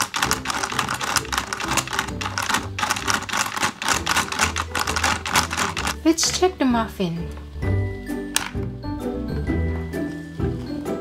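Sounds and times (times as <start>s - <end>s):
rapid plastic clicking: 0.0s - 6.0s
background music: 0.0s - 11.0s.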